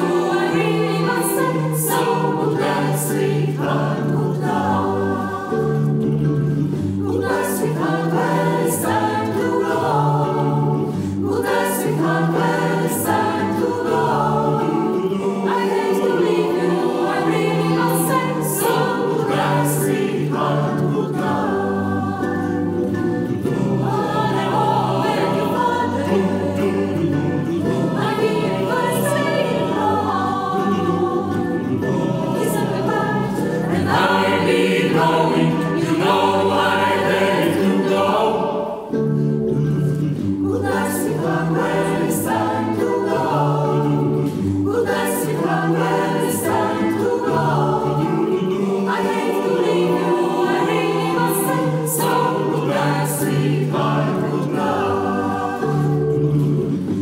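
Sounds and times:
mixed choir singing in harmony: 0.0 - 57.0.

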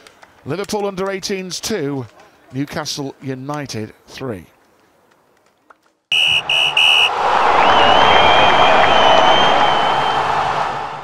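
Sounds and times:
referee's whistle short blasts: 6.1 - 7.2
long high whistled note: 6.1 - 10.2
crowd cheering and applause: 6.1 - 11.0.

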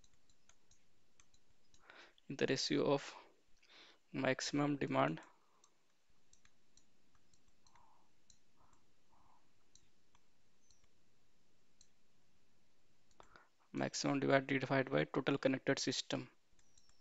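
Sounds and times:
stylus clicking on tablet screen: 0.0 - 2.7, 4.5 - 13.5, 16.4 - 17.0
steady low hiss: 0.0 - 17.0.

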